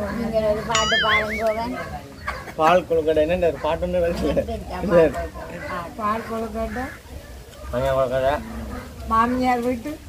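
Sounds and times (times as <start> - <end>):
people talking: 0.3 - 2.0.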